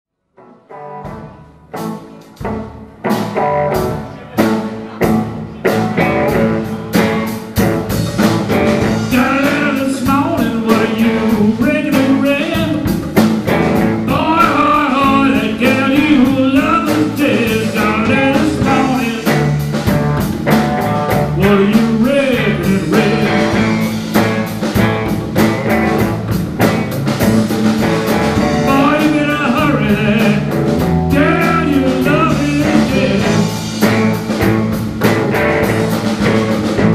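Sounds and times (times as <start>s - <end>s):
blues band playing: 0.4s - 36.9s
man singing: 8.8s - 13.0s, 14.0s - 19.8s, 21.1s - 24.2s, 28.4s - 33.6s.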